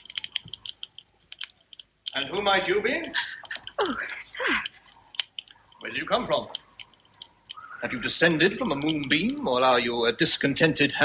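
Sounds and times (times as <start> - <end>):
fire crackling in a hearth: 0.0 - 11.0.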